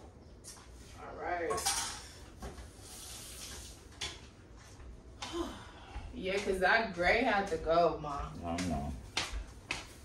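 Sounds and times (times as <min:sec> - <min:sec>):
kitchenware clinking: 0:01.5 - 0:02.2.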